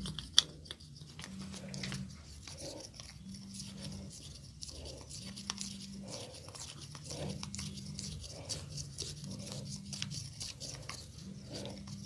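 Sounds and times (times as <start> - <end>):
massage roller rubbing on ear: 0.0 - 12.0.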